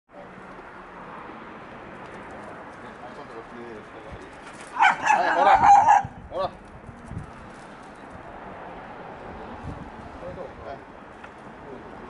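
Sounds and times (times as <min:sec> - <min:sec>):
dog yelp: 0:04.7 - 0:06.2.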